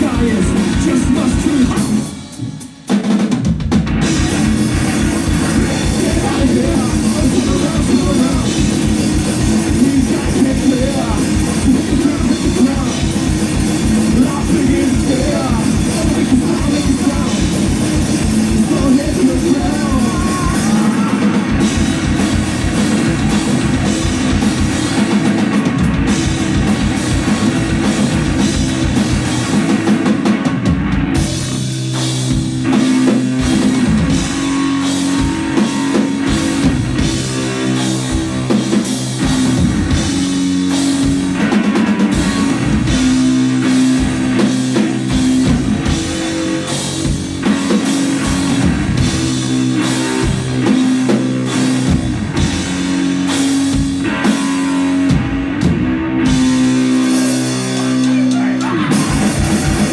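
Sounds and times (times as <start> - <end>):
busy drumming with cymbals: 0.0 - 59.9
electric guitar riff: 0.0 - 59.9.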